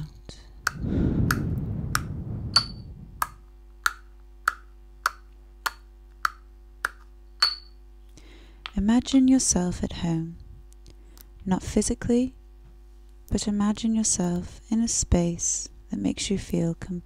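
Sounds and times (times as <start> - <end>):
faint low hum: 0.0 - 17.0
soft rushing noise: 0.7 - 3.4
pestle clinking in ceramic mortar: 7.4 - 7.8.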